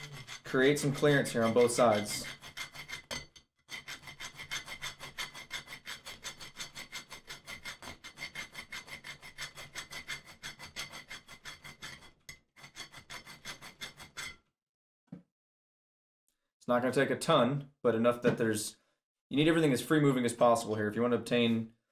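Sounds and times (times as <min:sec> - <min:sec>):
hand file rasping on metal: 0:00.0 - 0:14.4.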